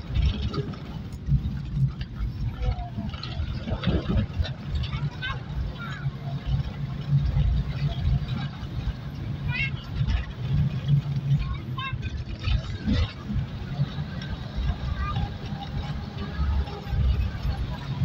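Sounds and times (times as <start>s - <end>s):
vehicle engine rumbling: 0.0s - 18.0s
faint voices: 2.2s - 18.0s.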